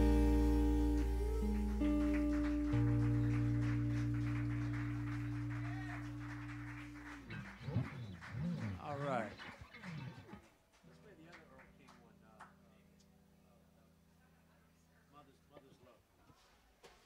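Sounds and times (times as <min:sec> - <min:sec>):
electric guitars and bass ringing chord: 0:00.0 - 0:07.6.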